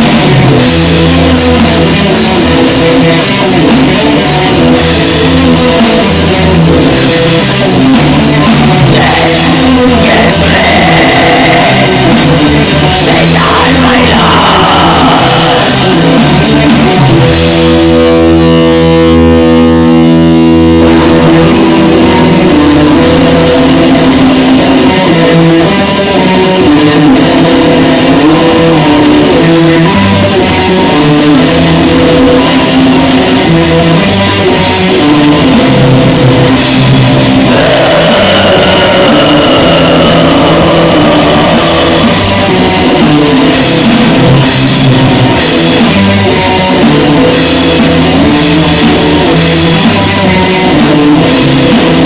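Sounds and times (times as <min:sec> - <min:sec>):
distorted electric guitar: 0:00.0 - 0:52.0
drums: 0:00.0 - 0:52.0.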